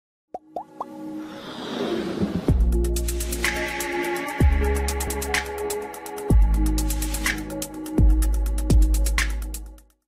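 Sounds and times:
electronic music: 0:02.5 - 0:09.7.

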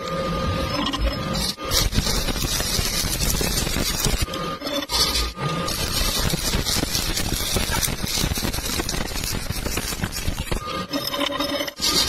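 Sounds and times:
welding arc crackling: 0:01.4 - 0:10.6.

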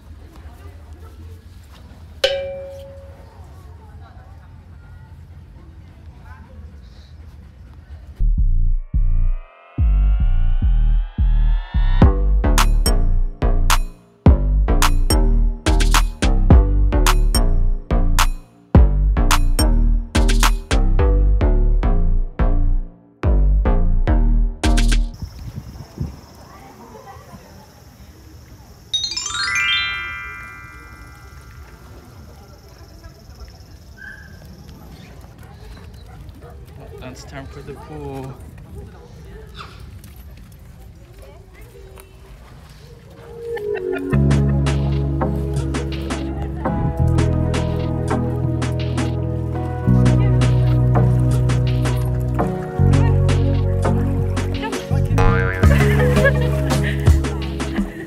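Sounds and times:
metallic bell-like chime: 0:02.2 - 0:03.4, 0:29.0 - 0:32.1.

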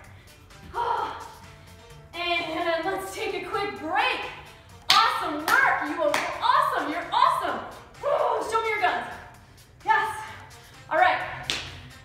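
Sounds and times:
background music: 0:00.0 - 0:12.0
woman's excited voice: 0:00.7 - 0:01.4, 0:05.6 - 0:09.1
hands clapping: 0:04.9 - 0:06.3, 0:11.5 - 0:11.8.

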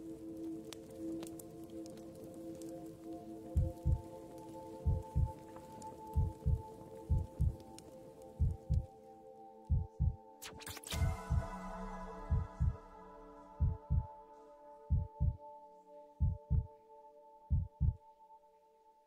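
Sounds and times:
ambient music with held chords: 0:00.0 - 0:19.0
low heartbeat thumps: 0:03.6 - 0:04.1, 0:04.8 - 0:05.3, 0:06.1 - 0:07.6, 0:08.4 - 0:08.9, 0:09.7 - 0:10.2, 0:11.0 - 0:11.6, 0:12.2 - 0:12.8, 0:13.6 - 0:14.1, 0:14.9 - 0:15.4, 0:16.2 - 0:16.7, 0:17.5 - 0:18.0.

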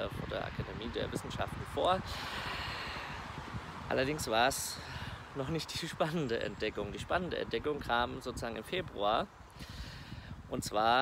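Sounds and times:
man breathing: 0:02.0 - 0:03.4, 0:04.7 - 0:05.3, 0:09.5 - 0:10.4.

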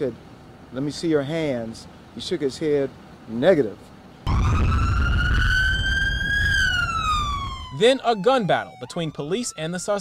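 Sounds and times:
low rumble: 0:04.3 - 0:07.7
police siren wailing: 0:04.3 - 0:10.0.

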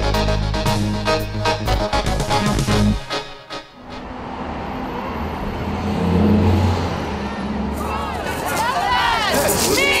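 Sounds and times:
road traffic rumble: 0:00.0 - 0:10.0
vehicle passing by: 0:03.9 - 0:08.2.

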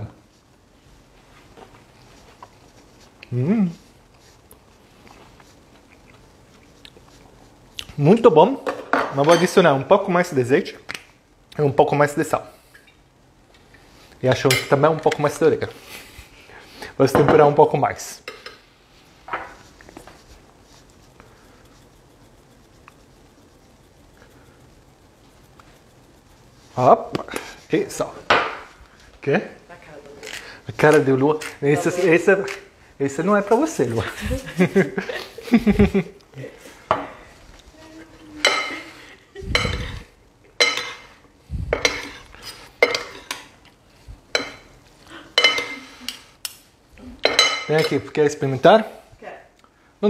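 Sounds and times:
metal utensils scraping ceramic bowl: 0:41.8 - 0:43.5.

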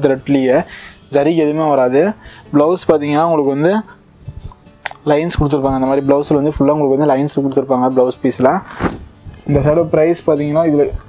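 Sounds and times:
man talking: 0:00.0 - 0:04.0, 0:04.9 - 0:08.8, 0:09.4 - 0:11.0
cloth rustling: 0:08.4 - 0:09.6.

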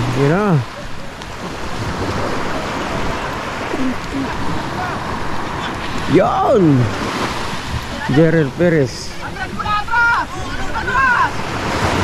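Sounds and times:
small waves breaking on sand: 0:00.0 - 0:12.0
wind buffeting microphone: 0:00.0 - 0:12.0.

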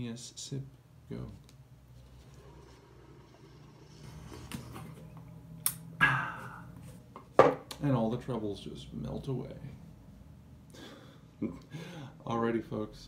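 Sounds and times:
coffee slurp: 0:02.0 - 0:05.2
breathy exhale: 0:06.0 - 0:06.7
cup knocking on wooden table: 0:07.2 - 0:07.6.

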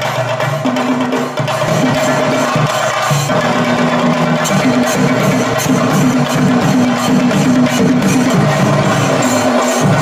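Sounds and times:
drums beaten rapidly with sticks: 0:00.0 - 0:10.0.

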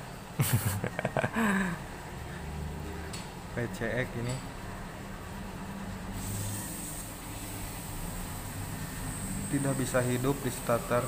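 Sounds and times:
low background hum: 0:00.0 - 0:11.0
high-pitched hiss: 0:06.2 - 0:11.0.

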